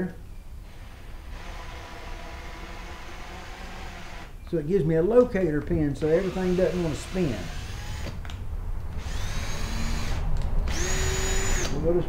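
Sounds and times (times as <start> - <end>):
cordless drill whine: 0.6 - 4.3, 6.0 - 8.2, 9.0 - 11.8.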